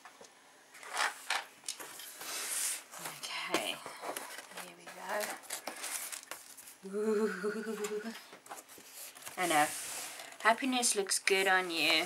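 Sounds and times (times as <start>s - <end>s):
person murmuring softly: 6.8s - 8.2s.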